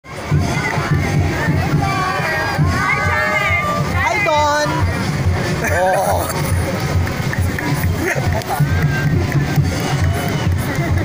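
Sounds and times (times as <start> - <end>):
crowd cheering and shouting: 0.1 - 11.0.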